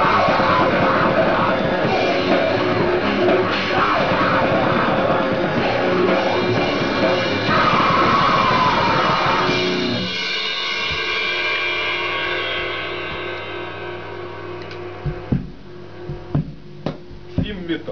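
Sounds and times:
held distorted guitar chord: 0:00.0 - 0:16.3
distorted electric guitar: 0:00.0 - 0:17.9
drum kit: 0:00.0 - 0:17.9
thumps: 0:14.6 - 0:17.7.

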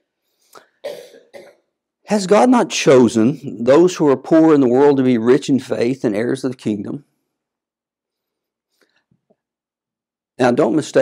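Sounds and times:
person clearing throat: 0:00.6 - 0:01.7.

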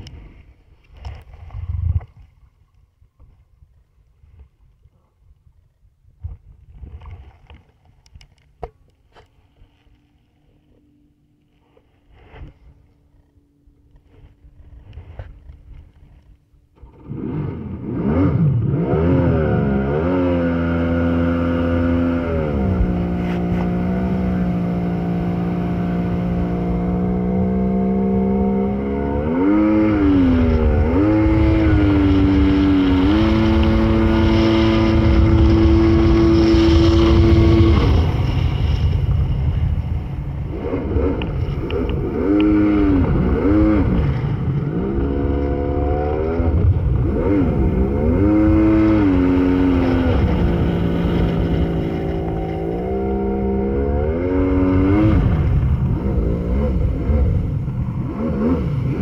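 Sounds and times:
watercraft engine running: 0:09.3 - 0:59.0.

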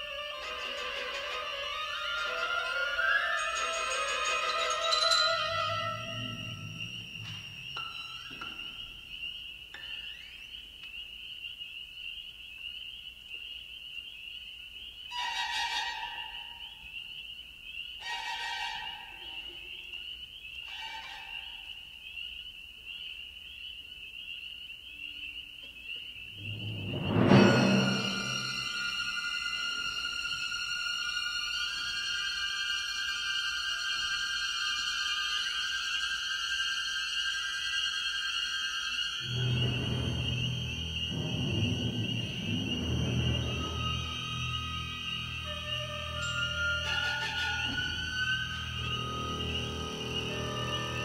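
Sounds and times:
low orchestral notes: 0:00.0 - 0:08.8, 0:26.4 - 0:32.3, 0:39.2 - 0:51.0
high wavering sustained tone: 0:00.0 - 0:09.2, 0:26.4 - 0:51.0
tree frogs peeping: 0:00.0 - 0:27.0, 0:28.2 - 0:51.0
high orchestral chord: 0:26.4 - 0:29.2, 0:39.2 - 0:51.0.

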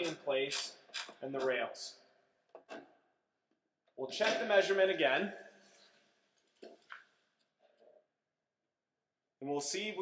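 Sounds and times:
wrench clicking on bolt: 0:00.0 - 0:01.2.

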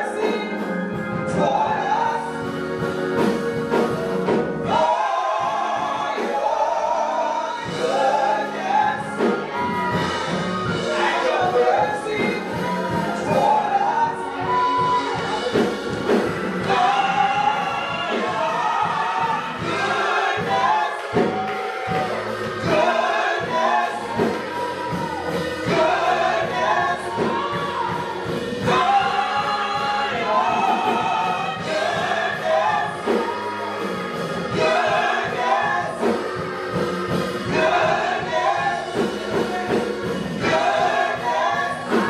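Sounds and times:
church band drums and organ: 0:00.0 - 0:42.0
vocal group singing in harmony: 0:00.0 - 0:42.0.

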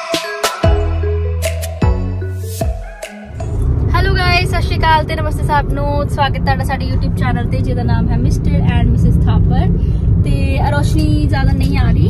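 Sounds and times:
car cabin rumble: 0:03.4 - 0:12.0
woman talking: 0:03.9 - 0:12.0.

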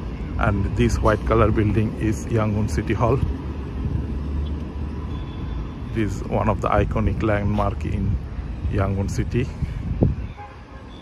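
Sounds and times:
city road traffic hum: 0:00.0 - 0:11.0.

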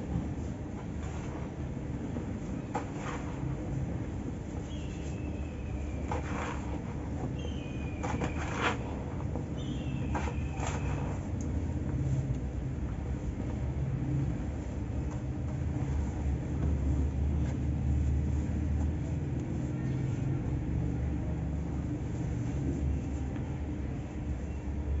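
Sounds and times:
hands stirring dry powder in metal basin: 0:00.2 - 0:13.3.

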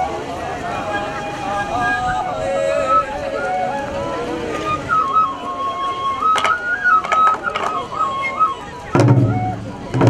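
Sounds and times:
bamboo flute melody: 0:00.0 - 0:10.0
sharp drum strikes: 0:09.0 - 0:10.0.

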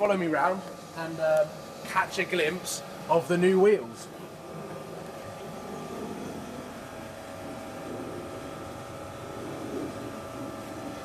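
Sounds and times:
faint even hum: 0:00.0 - 0:11.0.

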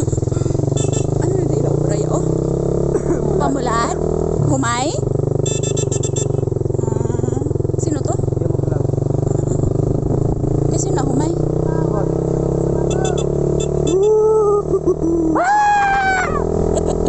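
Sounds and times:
motorcycle engine running: 0:00.0 - 0:17.0.

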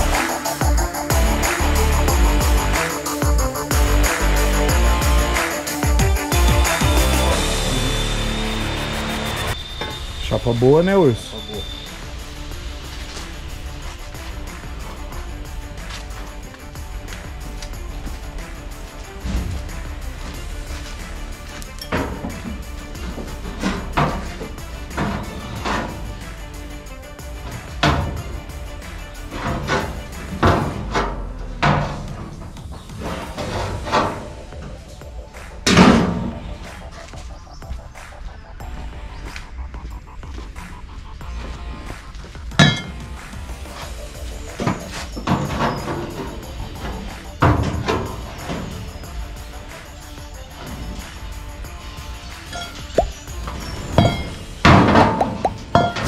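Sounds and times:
background music: 0:00.0 - 0:56.0
sheet-metal knocks and thunks: 0:21.9 - 0:26.1, 0:27.5 - 0:28.5, 0:29.3 - 0:34.8, 0:44.5 - 0:48.9.

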